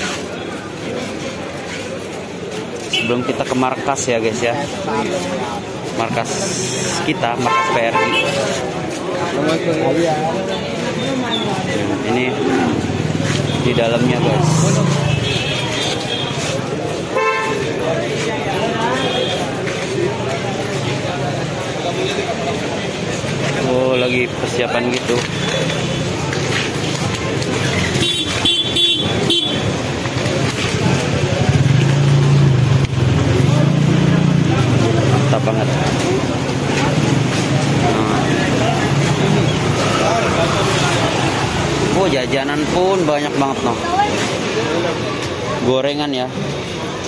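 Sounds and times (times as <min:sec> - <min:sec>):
crowd chatter: 0:00.0 - 0:47.0
vehicle horn toot: 0:17.2 - 0:17.6, 0:28.0 - 0:29.6.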